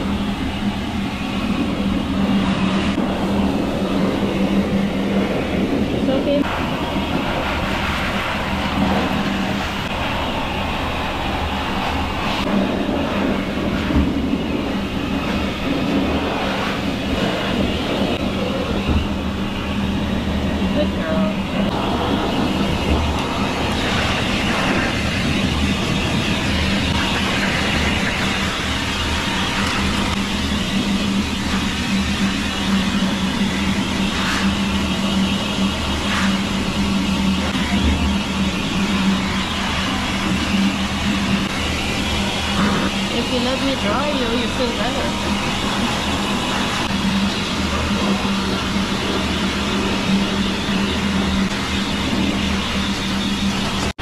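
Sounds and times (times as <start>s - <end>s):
pet dryer blowing air: 0.0s - 54.0s.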